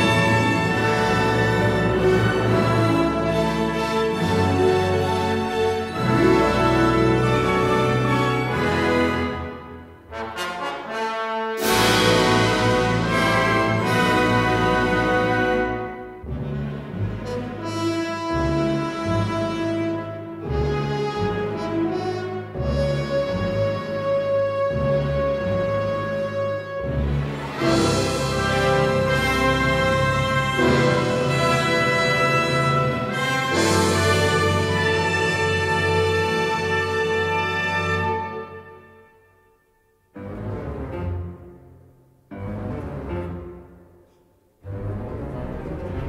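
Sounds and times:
symphony orchestra film music: 0.0 - 46.0.

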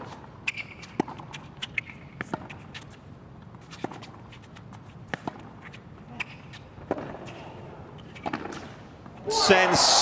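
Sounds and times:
racket hitting tennis ball: 0.5 - 2.9, 3.6 - 7.5.

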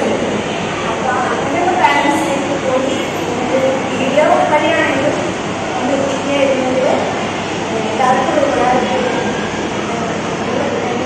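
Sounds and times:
steady background noise: 0.0 - 11.0
woman talking: 1.0 - 7.1, 7.7 - 9.2.

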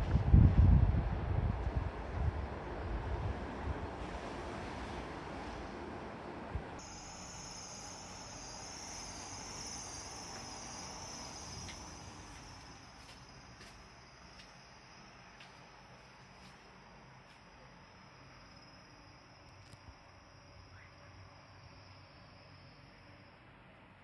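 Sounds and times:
wind rumbling on microphone: 0.0 - 5.1
wobbling high-pitched whine: 6.8 - 13.7.

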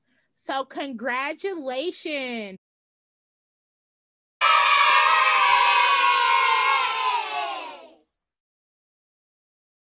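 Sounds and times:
crowd cheering and shouting: 4.4 - 8.0.

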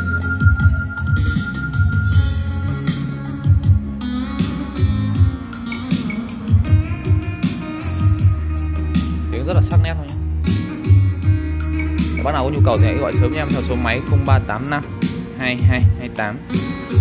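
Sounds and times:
guitar-led music through speakers: 0.0 - 17.0.

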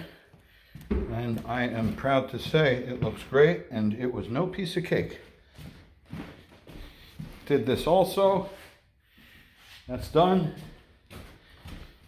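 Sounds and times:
footsteps on hardwood floor: 0.0 - 3.7, 5.0 - 12.0.

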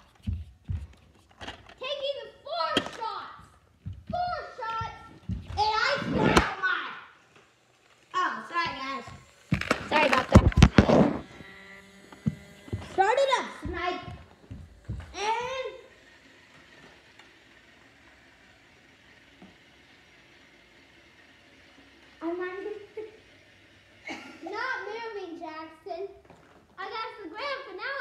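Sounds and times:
children talking and calling out: 1.8 - 7.2, 12.8 - 16.0, 24.1 - 28.0
loud thuds: 2.7 - 6.6.

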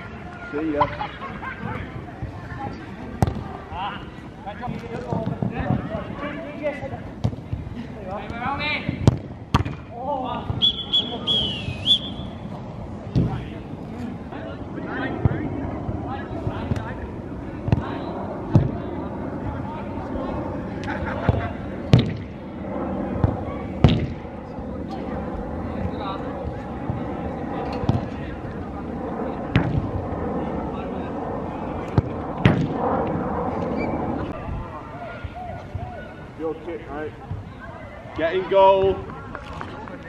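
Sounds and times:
football being kicked: 8.2 - 9.9, 32.0 - 32.8.

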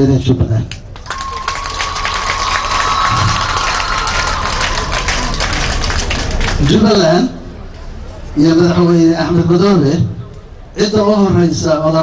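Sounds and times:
audience applauding: 1.0 - 6.9.

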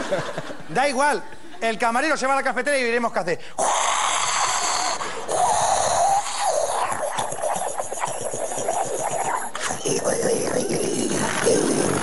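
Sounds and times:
man imitating steam wand hissing: 3.6 - 12.0.

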